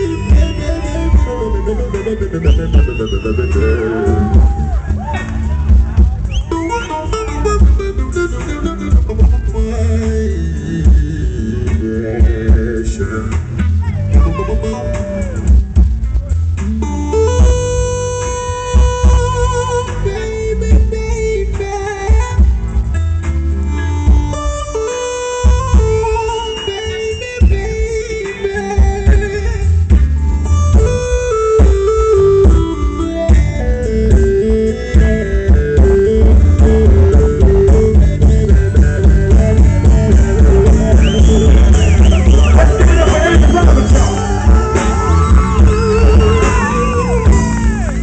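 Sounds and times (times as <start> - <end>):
band playing slow ballad: 0.0 - 48.0
bass guitar: 0.0 - 48.0
drums: 0.0 - 48.0
lead melody: 0.0 - 48.0.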